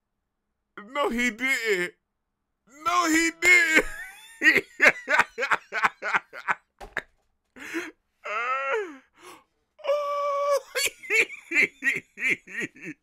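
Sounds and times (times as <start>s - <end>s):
man laughing hard: 2.9s - 8.9s, 10.4s - 13.0s.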